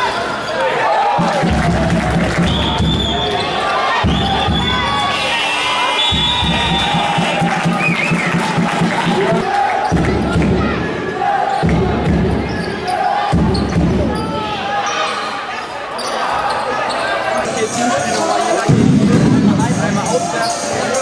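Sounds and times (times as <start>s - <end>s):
crowd noise: 0.0s - 21.0s
voices: 0.0s - 21.0s.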